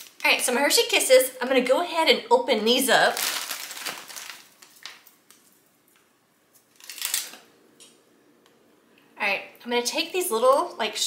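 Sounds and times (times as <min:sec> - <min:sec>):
foil wrappers crinkling: 0:03.0 - 0:05.6, 0:06.6 - 0:07.4.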